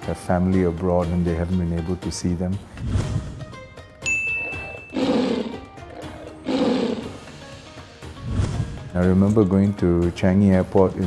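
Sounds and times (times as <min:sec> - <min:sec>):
background music: 0:00.0 - 0:11.0
bright high ding: 0:04.0 - 0:04.9
tiger roar sound effects: 0:04.4 - 0:07.3.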